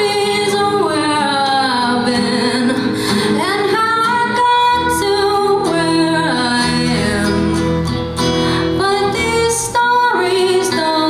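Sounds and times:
female lead vocal singing: 0.0 - 11.0.

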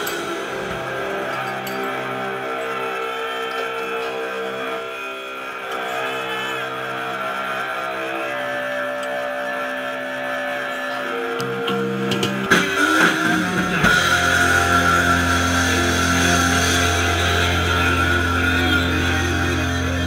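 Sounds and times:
electric guitar chords: 0.0 - 20.0.

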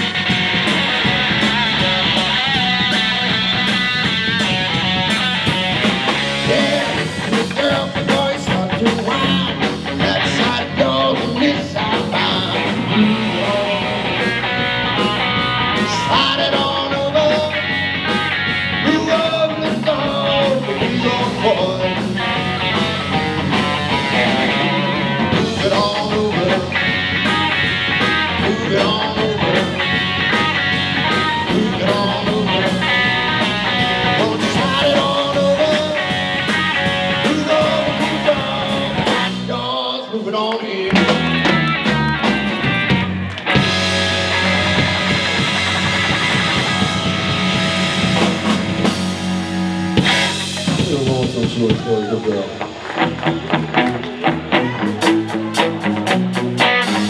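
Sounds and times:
live rock band playing: 0.0 - 57.0
person singing: 6.2 - 14.7, 15.8 - 17.8, 18.7 - 23.0, 23.9 - 27.4, 28.1 - 30.4, 31.1 - 36.2, 36.9 - 41.3.

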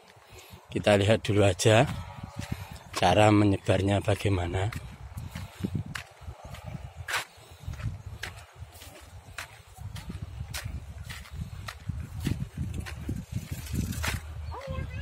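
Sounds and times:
wind rumbling on microphone: 0.4 - 15.0.

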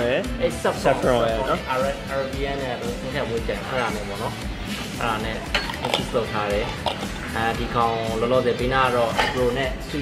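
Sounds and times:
background music: 0.0 - 10.0
bar tools clinking: 3.6 - 7.3, 9.0 - 9.6.

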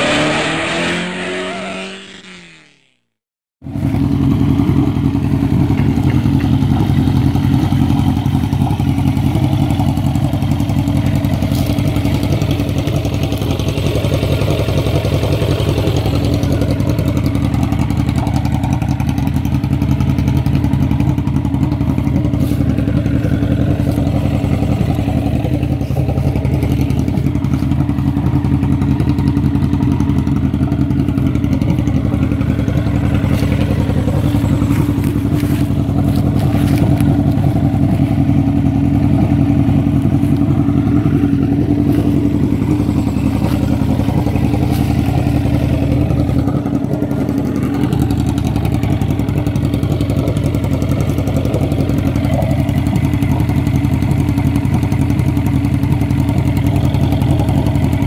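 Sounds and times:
motorcycle engine idling: 3.6 - 58.0.

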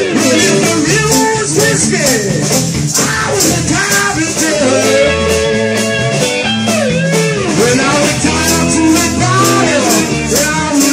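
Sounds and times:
blues-rock band playing: 0.0 - 10.9
tambourine shaken: 0.2 - 5.1, 7.5 - 10.9
harmonica bending notes: 3.1 - 10.9.

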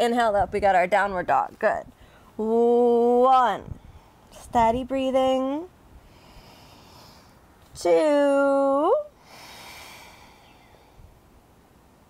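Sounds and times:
woman breathing: 2.0 - 2.4, 6.0 - 7.5, 9.1 - 11.2.

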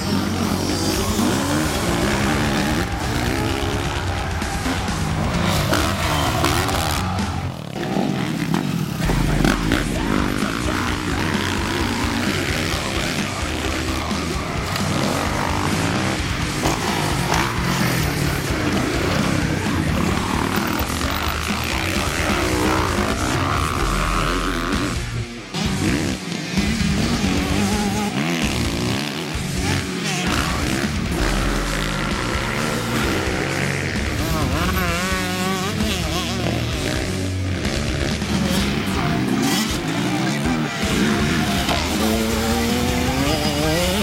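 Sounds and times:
dirt bike engine: 0.0 - 44.0
rock music: 0.0 - 44.0.

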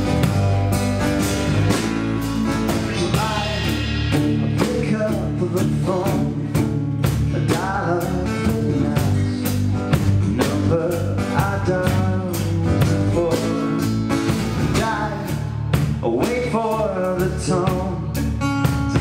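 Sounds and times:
live band playing blues-pop: 0.0 - 19.0
steady drum beat: 0.0 - 19.0.

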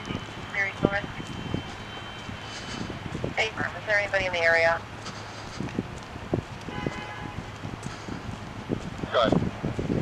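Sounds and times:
traffic hum: 0.0 - 10.0
faint horn: 6.7 - 7.5.

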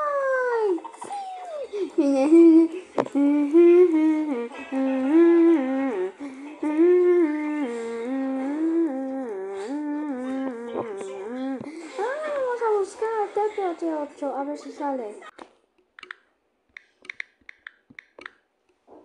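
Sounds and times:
person humming a tune: 1.2 - 11.7.

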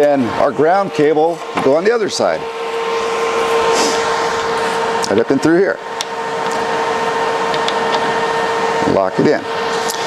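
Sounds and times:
machine whirring hum: 0.0 - 10.0.

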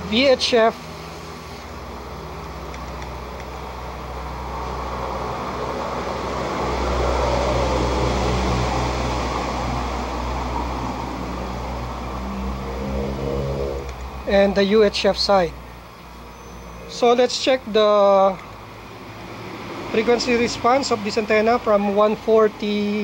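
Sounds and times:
vehicle engine rumble passing: 0.0 - 22.0
traffic noise: 0.0 - 23.0.

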